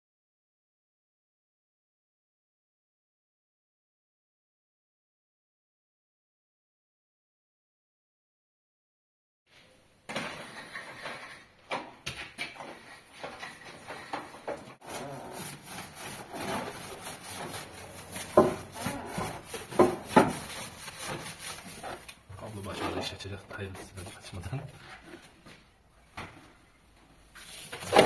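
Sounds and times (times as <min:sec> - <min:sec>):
brush scrubbing metal: 0:14.8 - 0:23.2.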